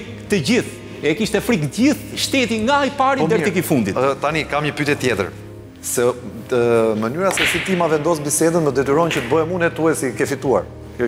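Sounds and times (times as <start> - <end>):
pool cue striking ball: 7.3 - 8.2.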